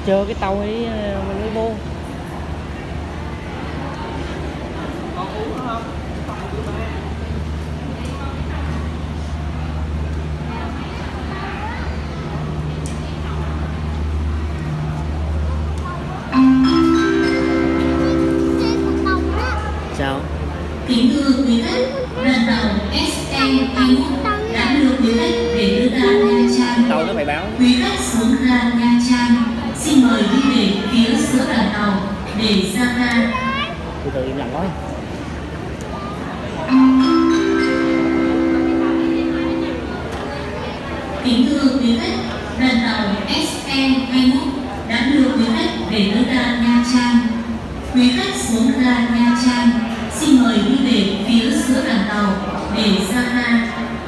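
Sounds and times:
faint voices talking: 0:00.0 - 0:54.0
public-address chime: 0:16.3 - 0:27.8, 0:36.6 - 0:40.8.

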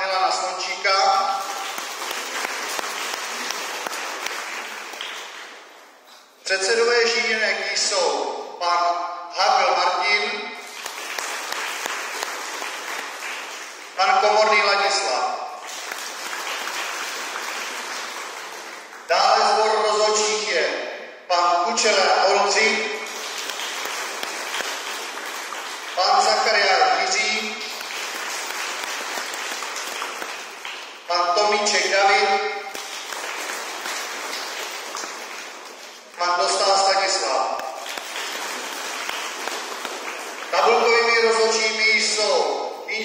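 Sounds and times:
crowd applauding: 0:01.0 - 0:06.0, 0:10.6 - 0:14.4, 0:15.6 - 0:19.1, 0:23.0 - 0:31.1, 0:32.2 - 0:41.6.

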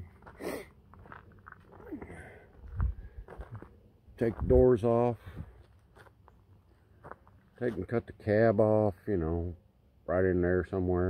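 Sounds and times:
crunching footsteps: 0:00.0 - 0:08.2
man speaking: 0:04.2 - 0:05.2, 0:07.6 - 0:11.0.

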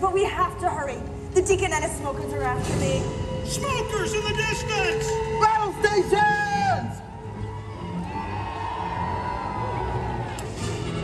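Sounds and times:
amplified show music: 0:02.2 - 0:11.0
large audience cheering: 0:04.8 - 0:11.0.

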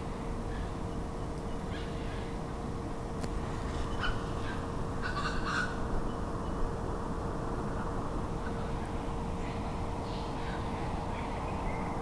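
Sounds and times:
bird calling: 0:00.5 - 0:02.4, 0:03.8 - 0:06.6.

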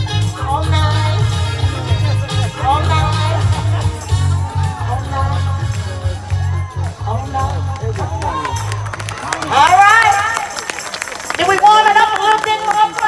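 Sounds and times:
steady bass line: 0:00.0 - 0:10.4
live band music: 0:00.0 - 0:11.0
loud voices into microphone: 0:00.0 - 0:13.0.

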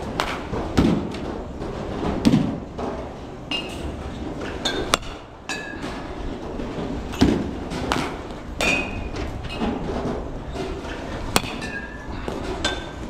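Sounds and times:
metal bat pinging on ball: 0:04.6 - 0:05.8, 0:11.3 - 0:12.0.

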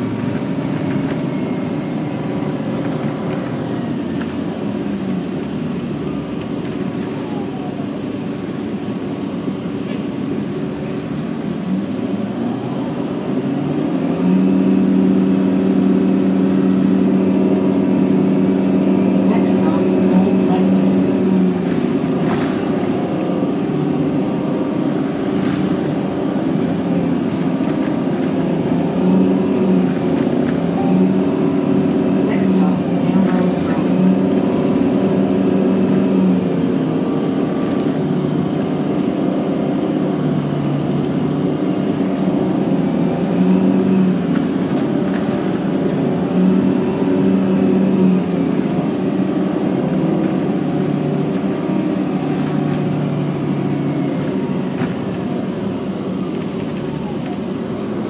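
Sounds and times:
bus engine running: 0:00.0 - 0:58.0
drivetrain whine: 0:00.0 - 0:58.0
road noise: 0:00.0 - 0:58.0.

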